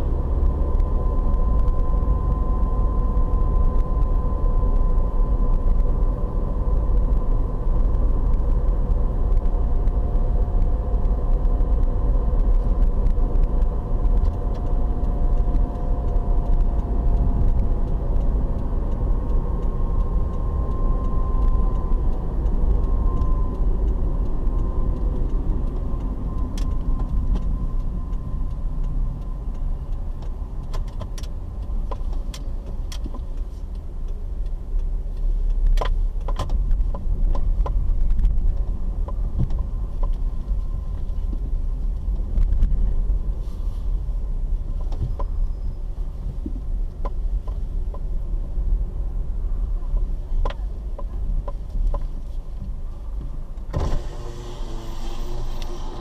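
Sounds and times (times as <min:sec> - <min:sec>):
engine and road noise rumble: 0:00.0 - 0:56.0.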